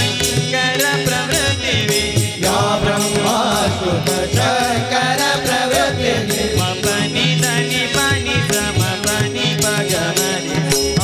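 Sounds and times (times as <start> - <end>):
hand cymbals striking: 0.0 - 11.0
harmonium chords: 0.0 - 11.0
man singing: 0.0 - 11.0.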